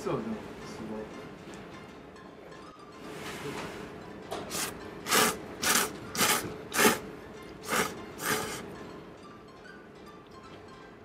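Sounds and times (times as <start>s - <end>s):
man slurping noodles: 4.5s - 7.0s, 7.6s - 8.7s.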